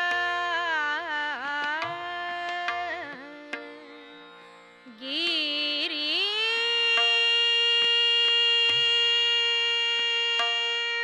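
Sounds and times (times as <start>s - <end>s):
woman singing long note: 5.2s - 11.0s.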